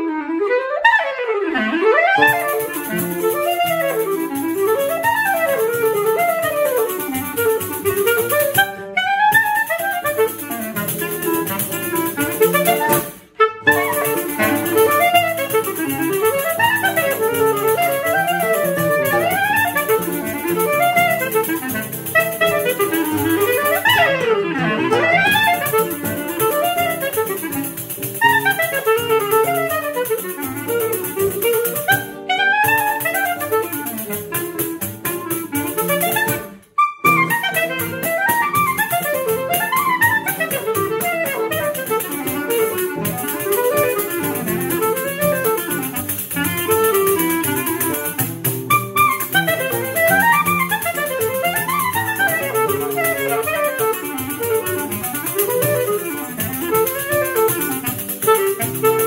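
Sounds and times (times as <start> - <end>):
clarinet melody: 0.0 - 59.0
pandeiro: 0.0 - 59.0.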